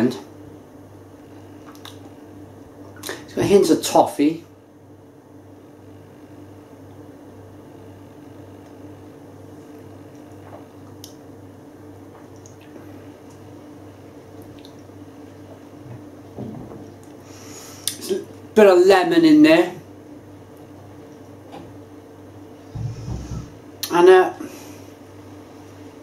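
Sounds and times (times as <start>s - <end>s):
steady low hum: 0.0s - 26.0s
lip smacks: 1.6s - 2.2s, 10.1s - 11.2s, 14.4s - 14.9s.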